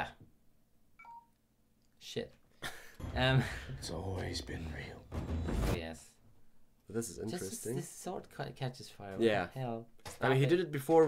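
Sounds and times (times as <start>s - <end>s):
faint electronic beep: 1.0s - 1.4s.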